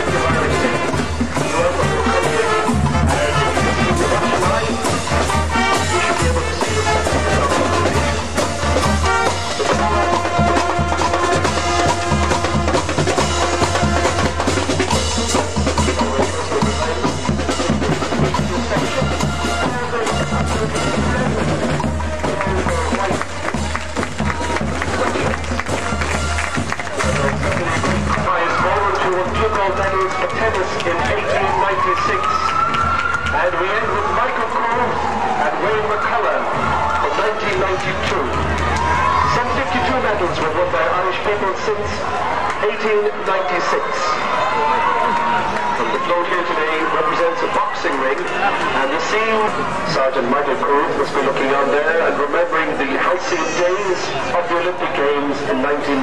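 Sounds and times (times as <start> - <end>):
steady drum beat: 0.0 - 31.6
marching band brass: 0.0 - 56.0.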